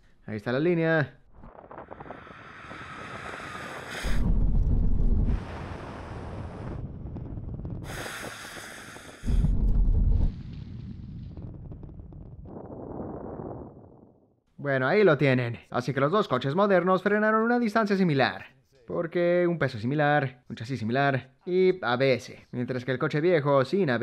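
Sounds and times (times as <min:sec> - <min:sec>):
wind buffeting microphone: 0:01.3 - 0:14.2.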